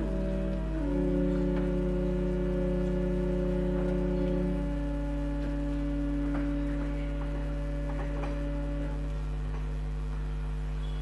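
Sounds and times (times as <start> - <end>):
low hum: 0.0 - 11.0
pipe organ sustained chord: 0.0 - 11.0.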